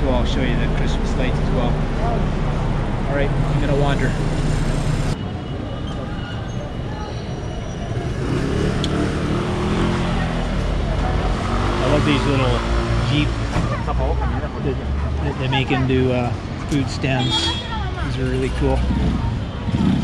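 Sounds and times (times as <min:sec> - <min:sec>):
voices of passers-by: 0:00.0 - 0:20.0.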